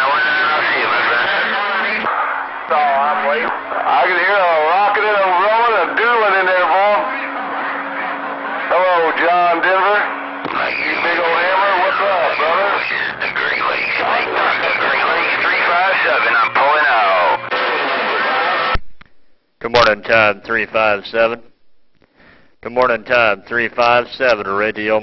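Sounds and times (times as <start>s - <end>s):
crackly radio voices: 0.0s - 18.8s
noisy radio signal with low hum: 0.0s - 25.0s.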